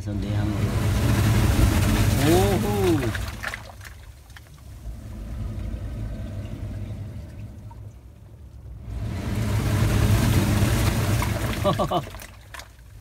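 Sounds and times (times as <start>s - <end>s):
wave surging in: 0.0s - 3.7s, 4.7s - 12.3s
seawater washing between rocks: 0.0s - 8.0s, 8.8s - 13.0s.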